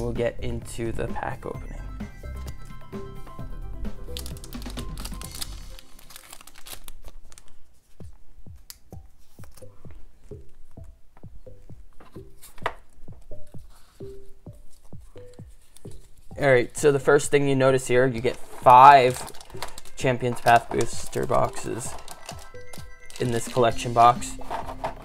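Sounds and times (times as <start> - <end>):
plastic card sleeves crinkling: 4.0 - 10.8, 12.1 - 25.0.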